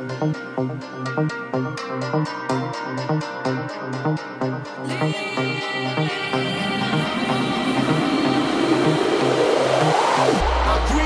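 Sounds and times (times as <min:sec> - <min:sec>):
house music mix over pa: 0:00.0 - 0:11.0
rising noise sweep: 0:06.5 - 0:11.0
deep bass line: 0:08.8 - 0:11.0.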